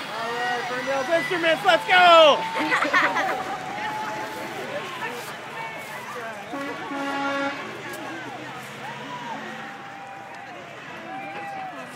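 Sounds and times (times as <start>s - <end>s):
crowd voices and calls: 0.0s - 11.9s
vehicle horn honk: 6.5s - 7.7s.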